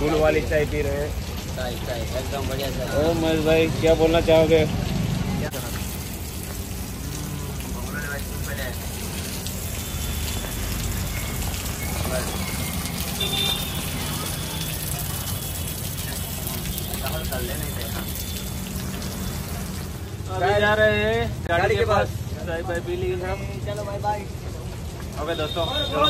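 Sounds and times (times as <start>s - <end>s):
heavy rain on pavement: 0.0s - 26.0s.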